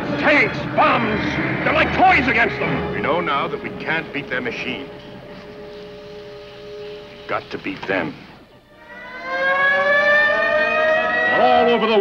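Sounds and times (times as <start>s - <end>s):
air-raid siren winding up: 8.7s - 12.0s.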